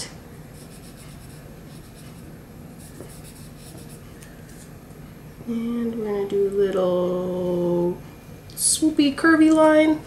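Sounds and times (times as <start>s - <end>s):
pencil sketching on paper: 0.6s - 4.0s.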